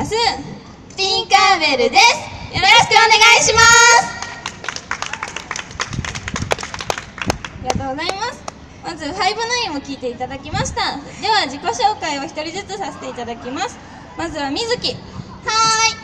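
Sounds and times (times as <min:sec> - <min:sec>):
audience clapping: 0:04.2 - 0:07.8.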